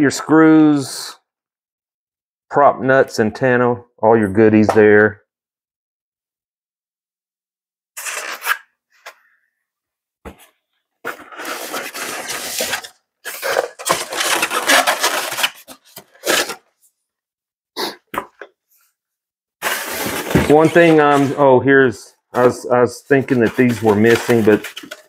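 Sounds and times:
styrofoam scraping and rubbing: 11.1 - 16.7, 19.6 - 21.4, 22.4 - 25.0.

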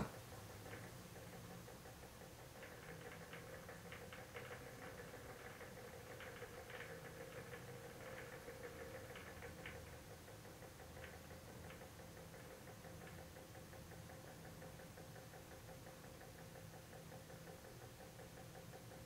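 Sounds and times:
light irregular ticking: 0.0 - 19.0.

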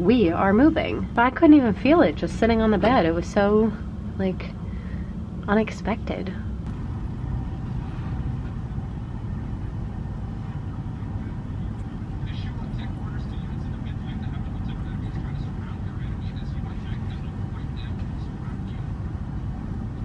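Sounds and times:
ship engine low rumble: 0.0 - 20.0
wind: 6.3 - 20.0.

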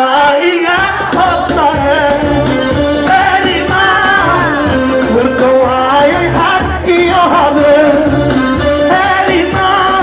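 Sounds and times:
amplified backing music: 0.0 - 10.0
man singing into a microphone: 0.0 - 10.0.

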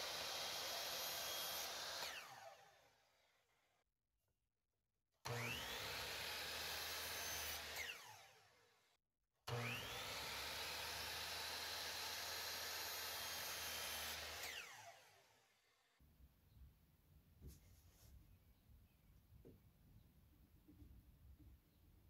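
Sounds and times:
miter saw motor whining: 0.0 - 3.0, 5.3 - 8.6, 9.5 - 15.4.

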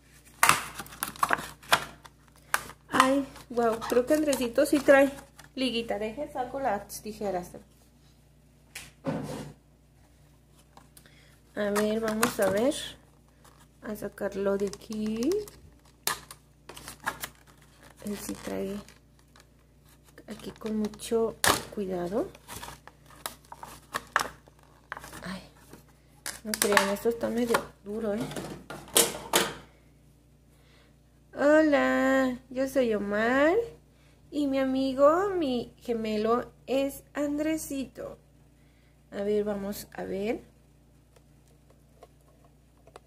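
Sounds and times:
plastic package rustling: 0.1 - 5.8, 10.5 - 27.6.

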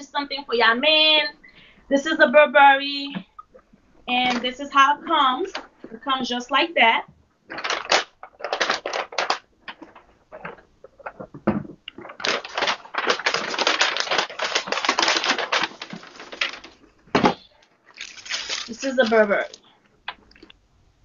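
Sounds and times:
tissue paper and plastic crinkling: 7.5 - 11.2, 12.0 - 16.9, 17.6 - 19.6.

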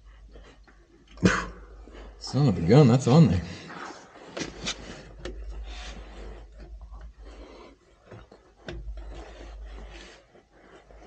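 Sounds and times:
hands rubbing and scraping filter: 2.0 - 11.0.

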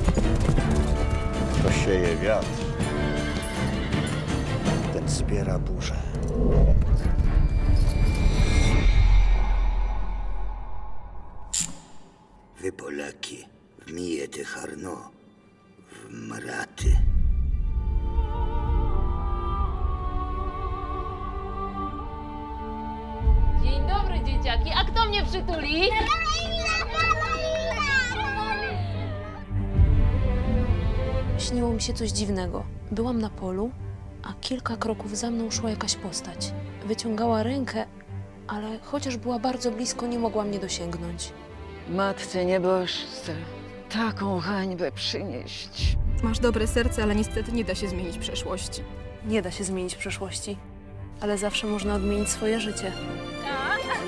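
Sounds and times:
horse hooves galloping: 0.0 - 4.2
film score: 0.0 - 54.0
children's voices playing: 25.8 - 29.5.

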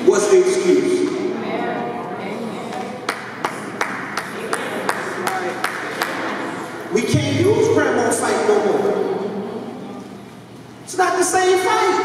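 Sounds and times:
murmuring voices: 0.0 - 7.2
rhythmic hand claps: 2.7 - 6.5.

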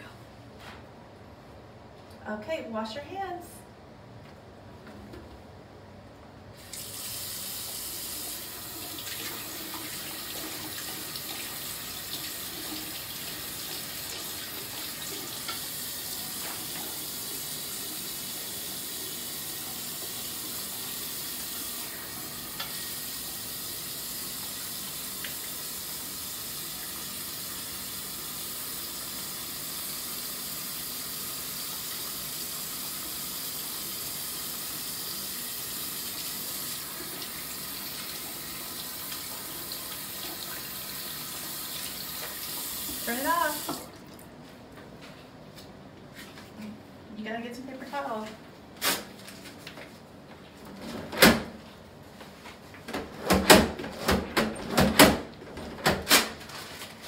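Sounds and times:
faucet running into sink: 6.6 - 44.0.

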